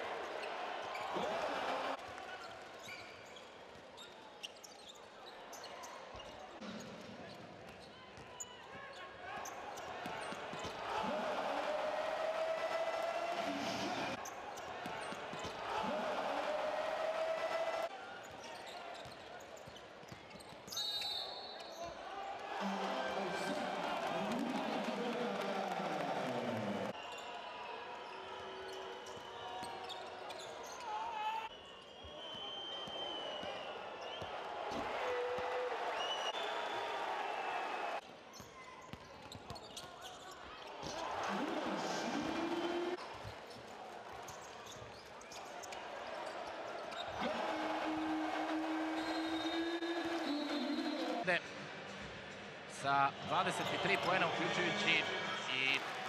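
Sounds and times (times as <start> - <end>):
large crowd voices: 0.0 - 56.0.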